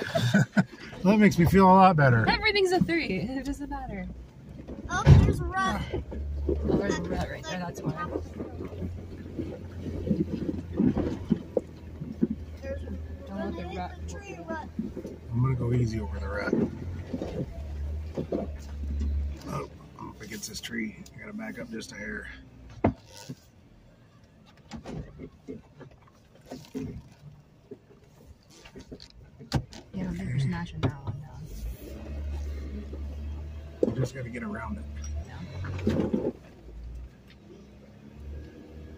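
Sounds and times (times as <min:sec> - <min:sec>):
car engine running low: 0:00.0 - 0:38.9
knocks and thumps of tyres: 0:03.7 - 0:13.0, 0:14.2 - 0:20.1, 0:22.0 - 0:23.7, 0:32.1 - 0:37.7.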